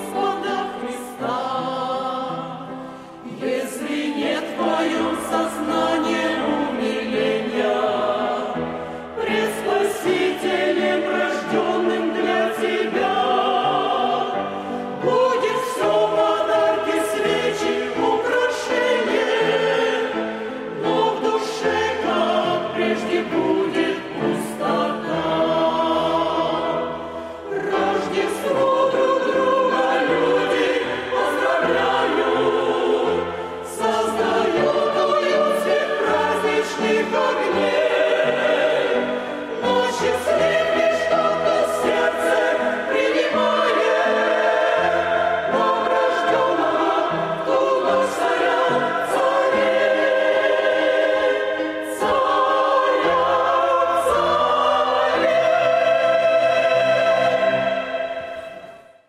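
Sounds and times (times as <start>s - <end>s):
mixed choir singing a hymn: 0.0s - 59.0s.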